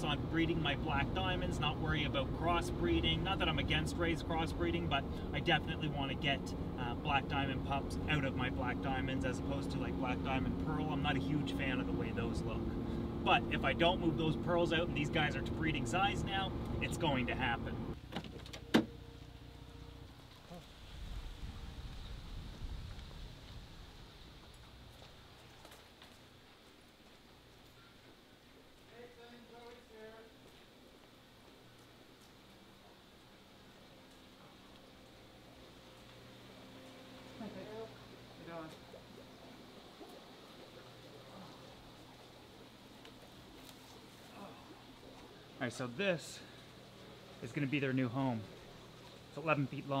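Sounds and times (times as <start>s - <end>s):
low steady rumble: 0.0s - 25.6s.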